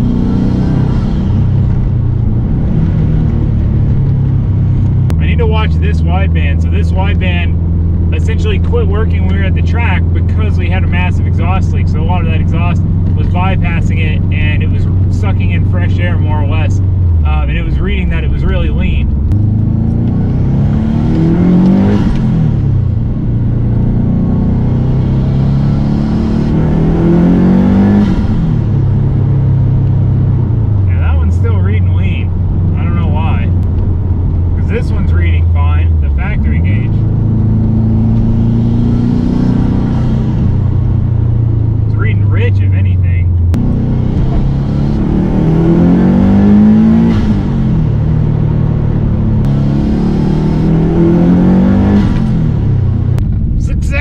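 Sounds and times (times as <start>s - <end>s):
car engine accelerating through gears: 0.0s - 54.0s.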